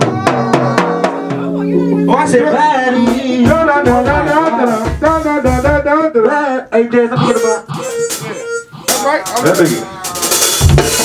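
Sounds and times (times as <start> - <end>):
guitar: 0.0 - 5.8, 7.2 - 11.0
person singing wavering notes: 0.2 - 3.5, 7.2 - 10.3.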